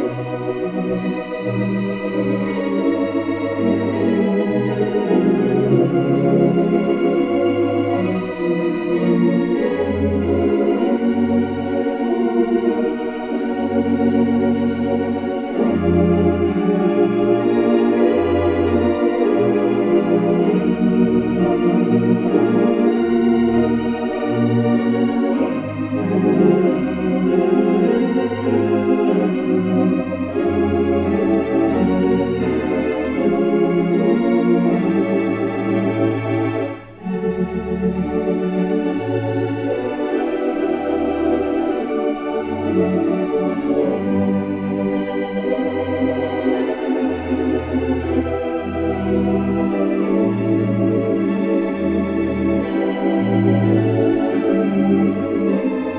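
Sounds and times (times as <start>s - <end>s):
organ playing hymn music: 0.0s - 55.9s.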